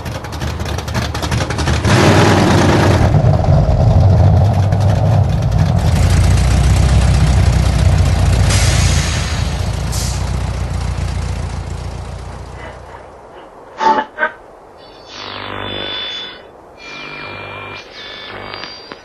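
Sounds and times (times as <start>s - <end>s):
engine idling: 0.0s - 13.2s
engine revving: 0.4s - 12.9s, 15.2s - 18.7s.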